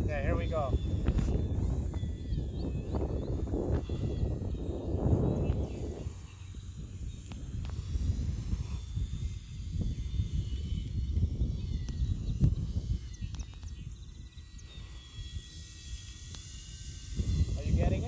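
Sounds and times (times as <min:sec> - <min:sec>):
model plane motor whine: 0:00.0 - 0:18.0
wind buffeting microphone: 0:00.0 - 0:18.0.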